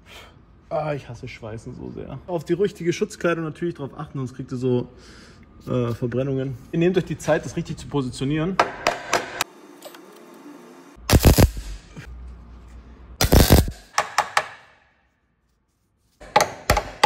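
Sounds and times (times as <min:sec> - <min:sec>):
welding bursts: 0:11.0 - 0:11.9, 0:13.2 - 0:13.9.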